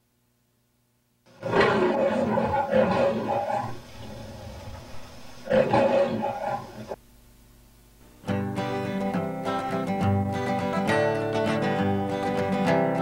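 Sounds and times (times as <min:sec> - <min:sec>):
lion-like roar: 0:01.3 - 0:07.0.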